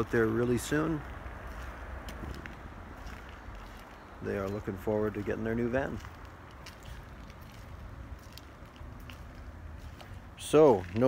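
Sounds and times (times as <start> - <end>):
footsteps walking: 0.0 - 11.0.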